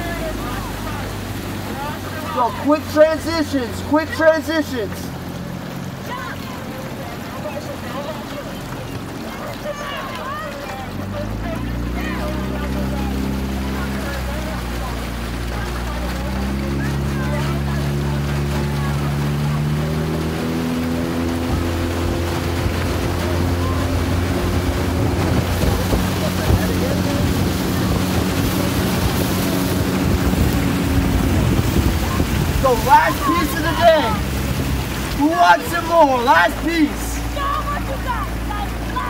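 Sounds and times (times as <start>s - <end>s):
outboard motor running: 0.0s - 39.0s
water noise: 0.0s - 39.0s
wind: 0.0s - 39.0s.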